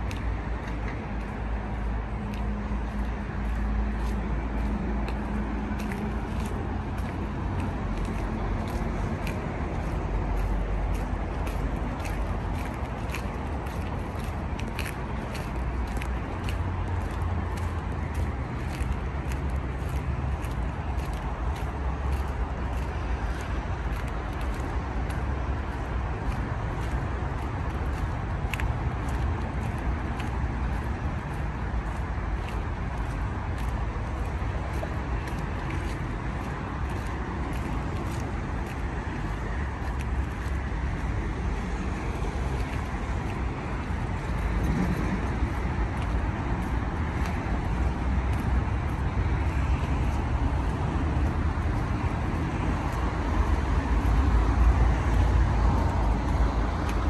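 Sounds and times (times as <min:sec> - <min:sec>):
city traffic rumble: 0:00.0 - 0:57.0
footsteps crunching on gritty path: 0:00.0 - 0:57.0.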